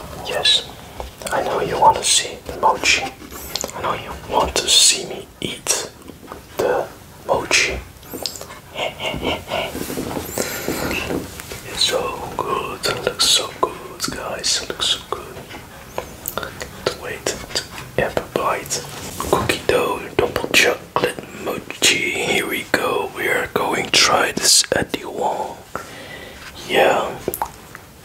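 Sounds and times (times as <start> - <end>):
close whispering: 0.0 - 27.5.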